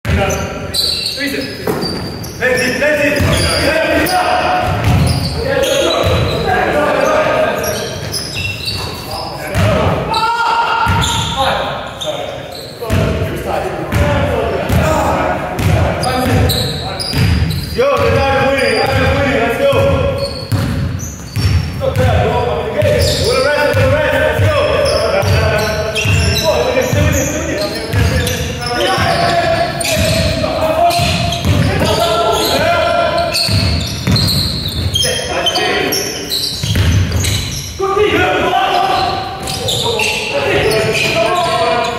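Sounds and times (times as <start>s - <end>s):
players calling out: 0.1s - 41.9s
trainers squeaking on court: 0.1s - 41.9s
basketball bouncing on wooden floor: 4.6s - 5.3s, 15.6s - 18.2s, 18.8s - 22.2s, 27.9s - 32.7s, 33.4s - 35.0s, 36.6s - 37.4s.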